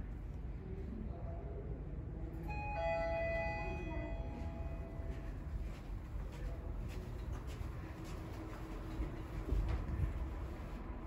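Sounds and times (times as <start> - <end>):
steady low hum: 0.0 - 11.0
elevator arrival chime: 2.4 - 5.5.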